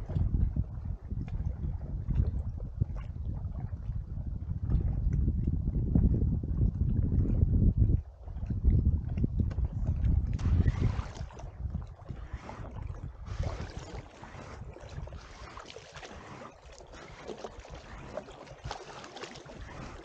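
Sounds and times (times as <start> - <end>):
water lapping against hull: 0.0 - 20.0
wind buffeting microphone: 0.0 - 20.0.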